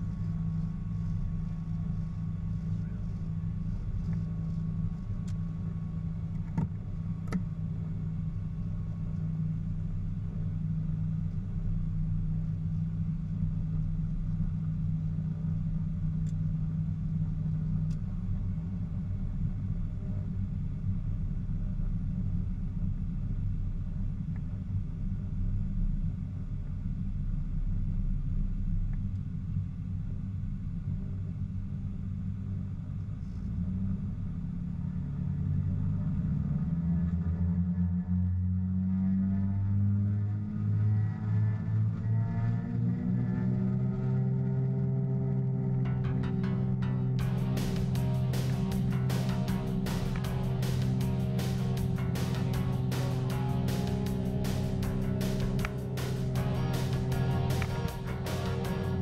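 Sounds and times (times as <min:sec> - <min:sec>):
piston aircraft engines droning: 0:00.0 - 0:59.0.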